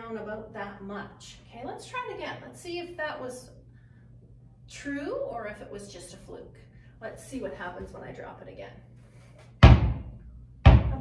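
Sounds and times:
basketball bouncing on hard floor: 9.6 - 10.1, 10.7 - 11.0.

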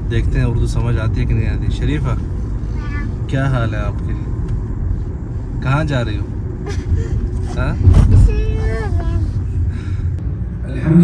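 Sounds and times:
car road rumble: 0.0 - 11.0
girl speaking: 2.7 - 3.2, 8.0 - 9.5.

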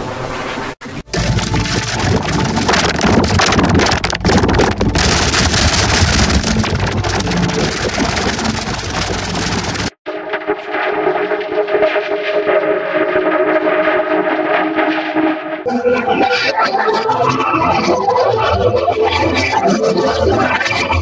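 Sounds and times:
heavily distorted noise: 1.0 - 15.6.

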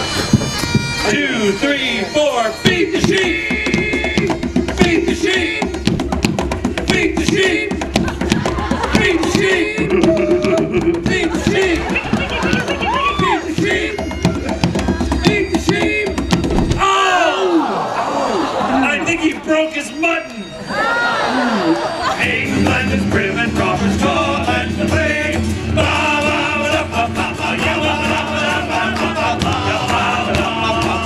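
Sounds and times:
frame drum: 0.0 - 1.2, 2.6 - 16.8
people shouting: 6.9 - 16.1, 16.8 - 19.0, 20.6 - 22.2
acoustic guitar: 22.1 - 31.0.

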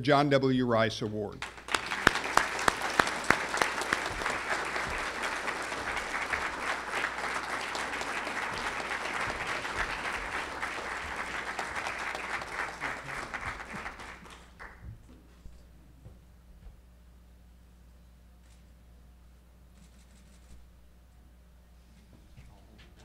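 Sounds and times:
audience applauding: 1.4 - 14.8.

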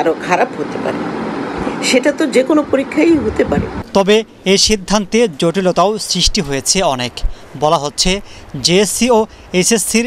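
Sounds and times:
woman speaking: 0.0 - 1.1, 1.8 - 3.8.

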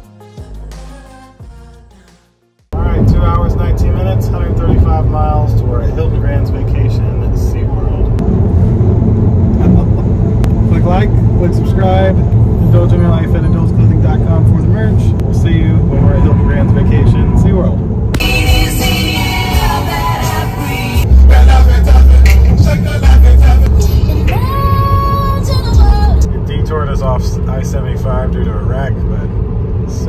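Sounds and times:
road and tyre rumble in car: 2.8 - 18.2, 20.8 - 30.0.

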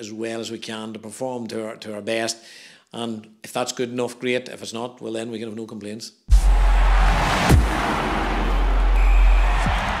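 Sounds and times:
noisy whoosh: 6.3 - 10.0.

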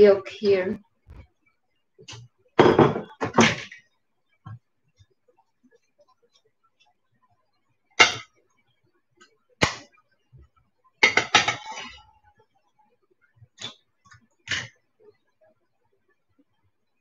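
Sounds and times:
dishes and utensils clinking: 11.0 - 12.0.

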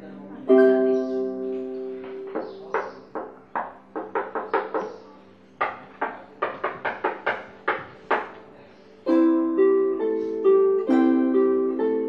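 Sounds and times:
plucked harp notes and chords: 0.0 - 3.2, 9.0 - 12.0.

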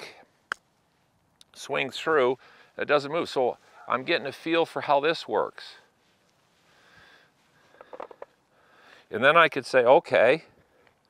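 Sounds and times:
breath through the nose: 6.6 - 9.1.

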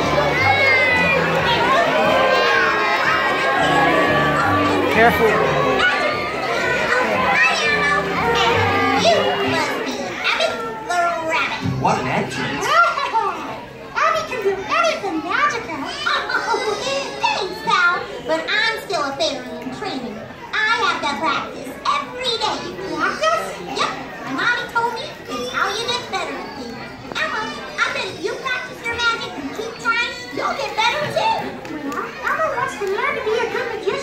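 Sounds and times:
music: 0.0 - 2.2, 3.5 - 6.5, 7.6 - 9.5
children talking and calling out: 0.0 - 34.0.

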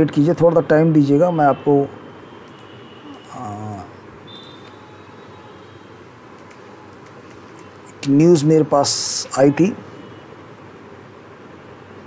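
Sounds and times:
microphone hiss: 0.0 - 12.0
man saying aah: 3.1 - 4.1
computer keyboard clicks: 6.4 - 7.7.

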